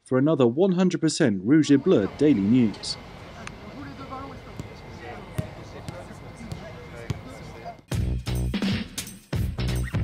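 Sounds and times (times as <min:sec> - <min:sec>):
distant voices: 0:01.5 - 0:07.9
ball being kicked thuds: 0:04.6 - 0:07.2.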